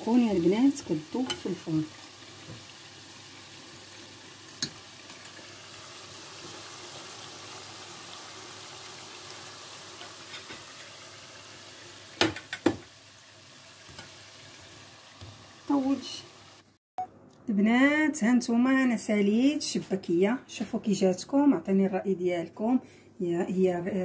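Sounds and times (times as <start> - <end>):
pastries sizzling in hot oil: 0.0 - 16.8.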